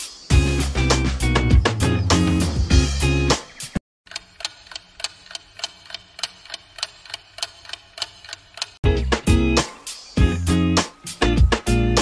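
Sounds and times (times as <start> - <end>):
music: 0.0 - 3.8, 8.8 - 12.0
clock ticking: 4.1 - 8.8.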